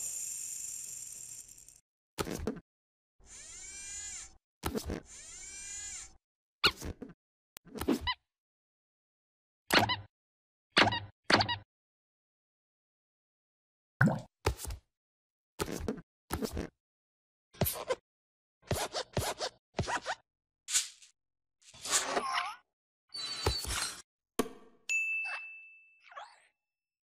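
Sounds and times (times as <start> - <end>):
notification bell ding: 24.9 - 26.0.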